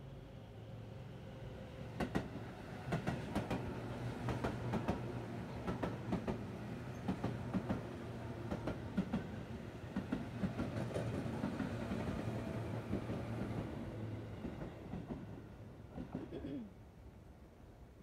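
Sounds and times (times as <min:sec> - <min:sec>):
train low running hum: 0:00.0 - 0:17.8.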